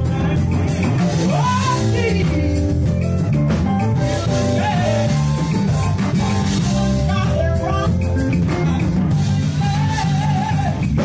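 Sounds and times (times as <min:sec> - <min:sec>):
men's vocal group singing: 0:00.0 - 0:03.3, 0:04.0 - 0:11.0
drum kit: 0:00.0 - 0:11.0
electric bass guitar: 0:00.0 - 0:11.0
keyboard: 0:00.0 - 0:11.0.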